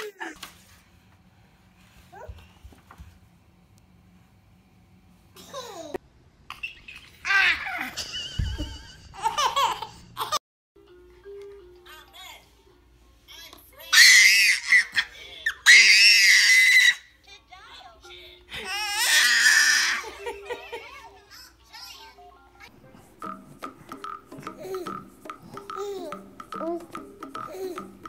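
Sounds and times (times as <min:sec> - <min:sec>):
infant shrieking: 0:13.9 - 0:17.1, 0:18.6 - 0:20.0.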